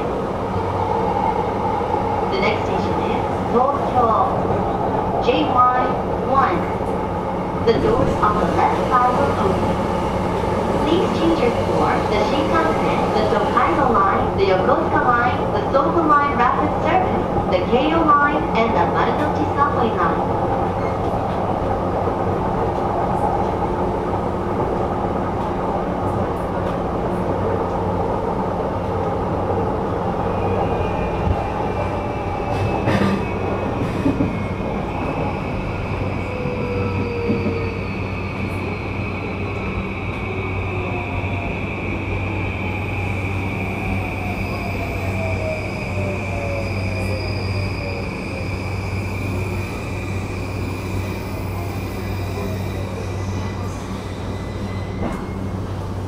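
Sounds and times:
train running rumble: 0.0s - 54.4s.

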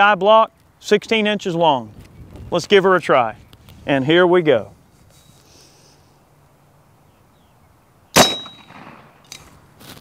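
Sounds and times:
air rifle shot: 8.2s - 9.4s.

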